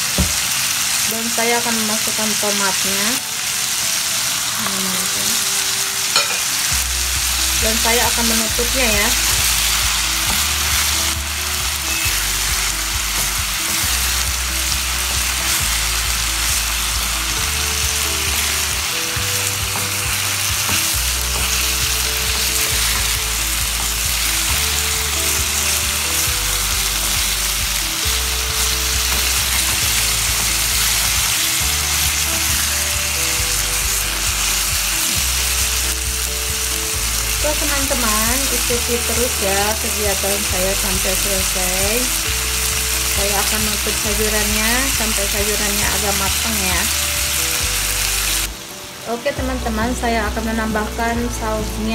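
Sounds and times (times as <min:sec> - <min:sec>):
food sizzling in a frying pan: 0:00.0 - 0:51.9
background music with bass line: 0:06.2 - 0:48.6.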